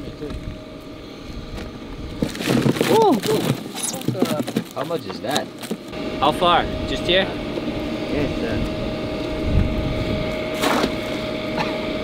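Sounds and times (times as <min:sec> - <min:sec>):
shrimp tapping against box: 0:02.3 - 0:05.8.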